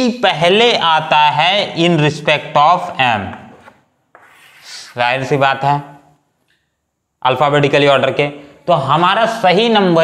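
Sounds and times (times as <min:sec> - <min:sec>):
soft rubbing noise: 0:03.4 - 0:05.4.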